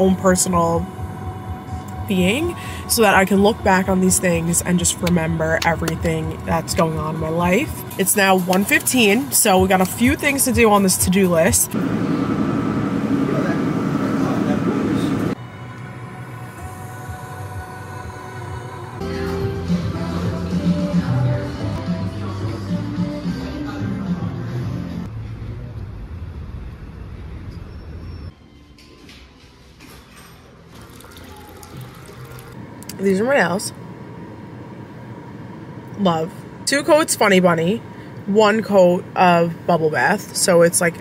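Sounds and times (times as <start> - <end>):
car wash rushing noise: 11.8 - 15.4
low rumble: 25.0 - 28.3
water swirling and splashing: 30.8 - 32.6.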